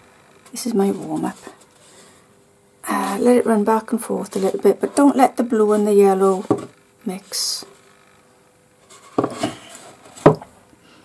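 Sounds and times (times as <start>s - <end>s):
board scuffing on wood: 8.9s - 10.4s.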